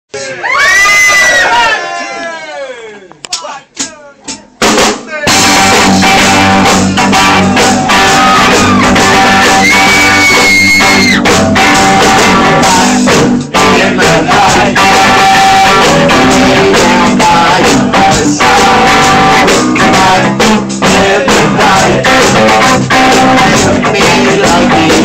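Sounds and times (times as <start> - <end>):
rock band playing: 4.4 - 25.0.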